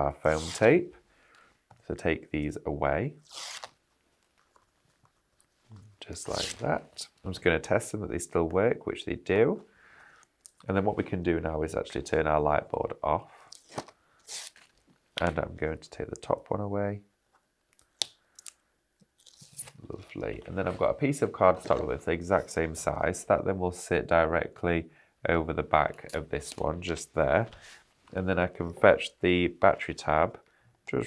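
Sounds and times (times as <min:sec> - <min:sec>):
tape backing peeling off: 0:03.2 - 0:06.8, 0:13.5 - 0:15.4.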